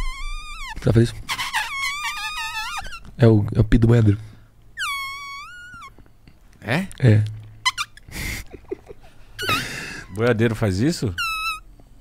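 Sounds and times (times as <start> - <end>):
high squeal falling in pitch: 0.0 - 3.0.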